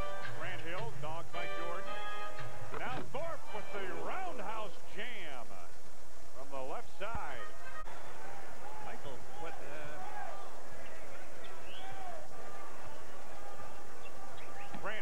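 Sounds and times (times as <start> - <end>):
broadcast music: 0.0 - 5.8
indistinct broadcast voices: 0.0 - 15.0.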